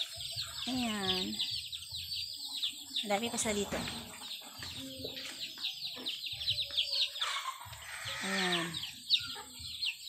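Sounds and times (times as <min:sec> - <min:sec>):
chickens clucking: 0:00.0 - 0:10.0
chicks peeping: 0:00.0 - 0:10.0.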